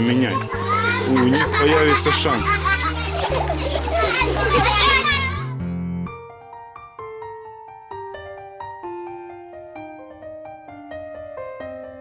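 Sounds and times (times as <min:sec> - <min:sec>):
children chattering and shouting: 0:00.0 - 0:05.6
soft piano melody: 0:00.0 - 0:12.0.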